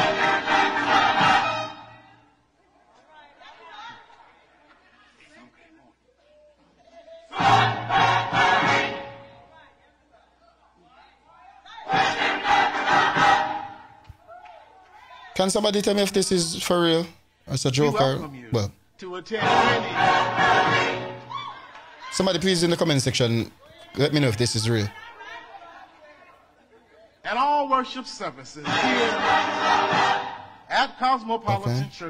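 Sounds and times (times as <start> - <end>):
choir singing: 0.0 - 2.3, 7.0 - 9.5, 11.8 - 14.0, 19.3 - 22.0, 28.6 - 30.7.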